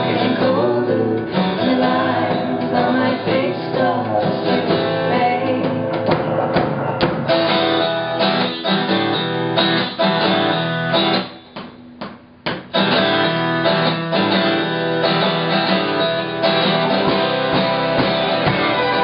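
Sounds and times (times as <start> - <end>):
live country band playing: 0.0 - 11.5, 12.7 - 19.0
strummed acoustic guitar: 0.0 - 19.0.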